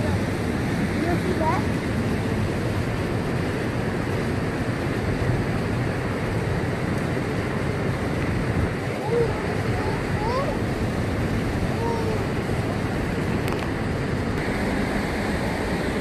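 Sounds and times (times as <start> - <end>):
white water rushing over rapids: 0.0 - 16.0.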